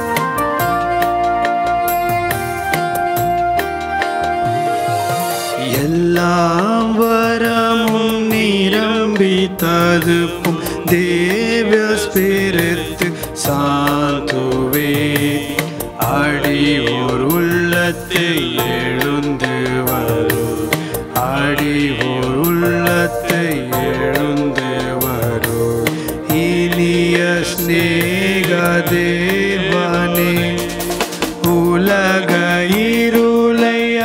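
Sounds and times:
instrumental accompaniment: 0:00.0 - 0:34.0
steady percussion beat: 0:00.0 - 0:34.0
person singing a hymn: 0:05.6 - 0:34.0.

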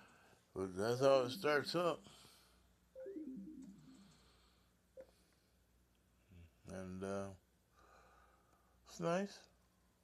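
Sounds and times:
falling startup chime: 0:00.8 - 0:02.1, 0:03.0 - 0:04.2.

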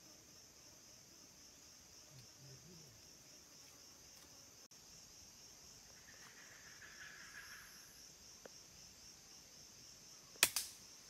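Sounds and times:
forest insects chorus: 0:00.0 - 0:11.0
smaller second crack: 0:10.4 - 0:10.8.

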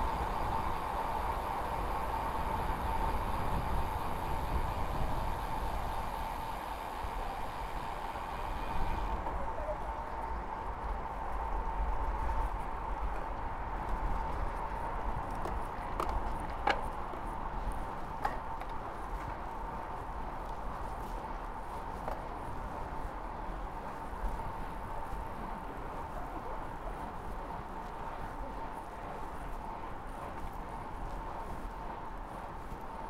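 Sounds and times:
road noise: 0:00.0 - 0:33.0
wind rush on microphone: 0:00.0 - 0:33.0.

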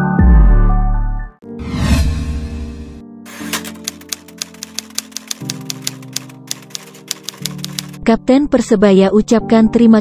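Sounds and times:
typewriter keystroke clicks: 0:03.3 - 0:08.0.

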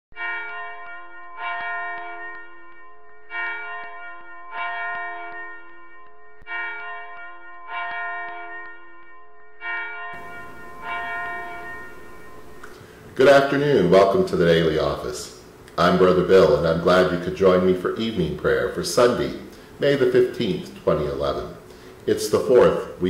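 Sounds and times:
church bell ringing: 0:00.1 - 0:14.3
steady hiss: 0:10.2 - 0:23.0.

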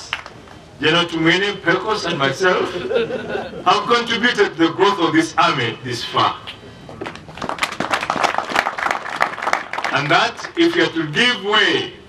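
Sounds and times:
audience applauding: 0:07.0 - 0:10.9.

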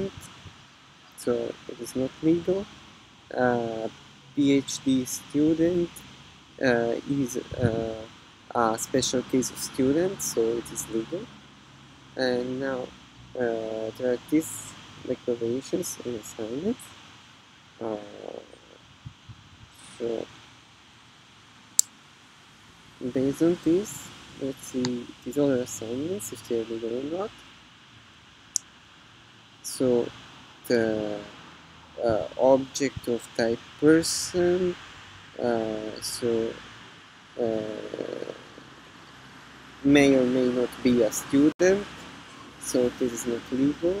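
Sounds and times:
man saying uh: 0:00.0 - 0:00.3, 0:01.2 - 0:02.7, 0:03.3 - 0:06.0, 0:06.6 - 0:11.3, 0:12.2 - 0:16.8, 0:17.8 - 0:18.8, 0:19.8 - 0:20.3, 0:23.0 - 0:27.3, 0:29.7 - 0:30.1, 0:30.7 - 0:31.3, 0:32.0 - 0:34.8, 0:35.4 - 0:36.6, 0:37.4 - 0:38.6, 0:39.8 - 0:41.9, 0:42.5 - 0:44.0
faint steady hiss: 0:00.0 - 0:44.0.

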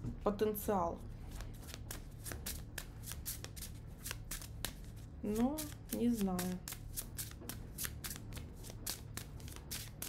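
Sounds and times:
cards being shuffled: 0:01.3 - 0:10.0.

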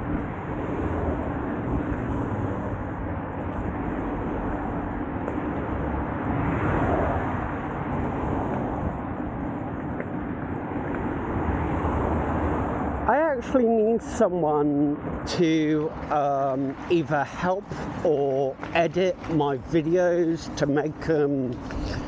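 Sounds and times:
wind rush on microphone: 0:00.0 - 0:14.0, 0:20.5 - 0:22.0.

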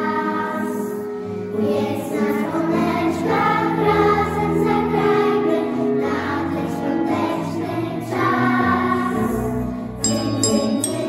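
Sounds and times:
children's choir singing: 0:00.0 - 0:11.0
low instrumental accompaniment: 0:10.0 - 0:11.0.

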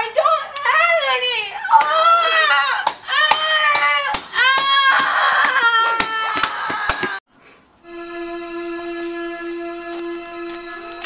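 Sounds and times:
boy vocalizing cries: 0:04.9 - 0:07.2.

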